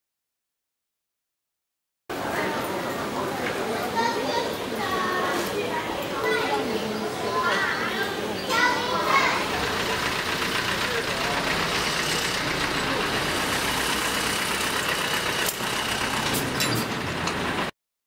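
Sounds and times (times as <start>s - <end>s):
people's voices: 2.1s - 16.4s
street noise: 2.1s - 17.7s
vehicle engine rumbling: 8.5s - 17.7s.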